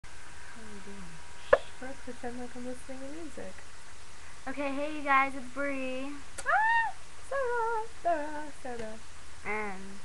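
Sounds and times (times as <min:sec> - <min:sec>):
speech: 0:01.8 - 0:03.6, 0:04.5 - 0:06.2, 0:09.5 - 0:10.0.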